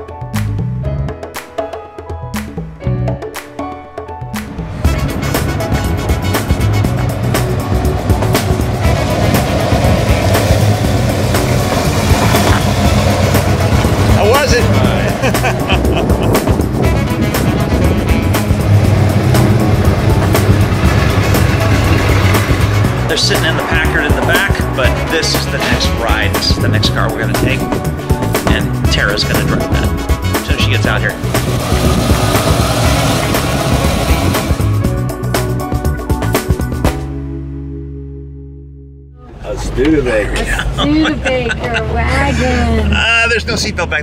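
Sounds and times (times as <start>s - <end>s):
music: 0.0s - 42.6s
car engine running: 4.7s - 37.0s.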